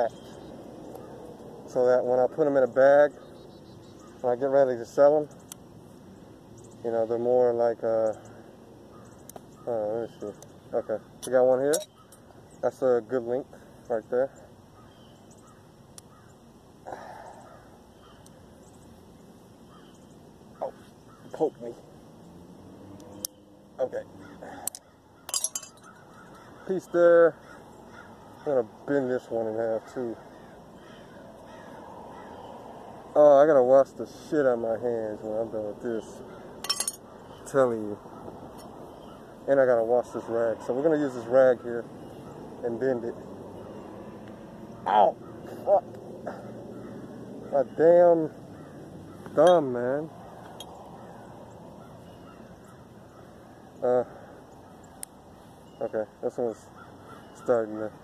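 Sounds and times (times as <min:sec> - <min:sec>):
faint distant bird calls: 0:00.0 - 0:58.0
copper pipe clinking: 0:11.2 - 0:12.3, 0:24.6 - 0:26.0, 0:36.6 - 0:37.0, 0:49.4 - 0:49.8.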